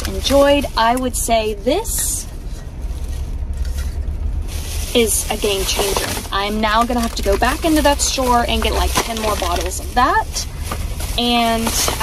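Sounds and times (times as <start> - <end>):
low rumble in car cabin: 0.0 - 12.0.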